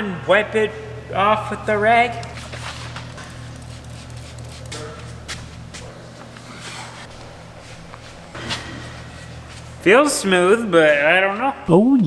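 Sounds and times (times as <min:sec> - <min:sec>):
steady low hum: 0:00.0 - 0:12.0
spray bottle squirting: 0:02.8 - 0:04.9.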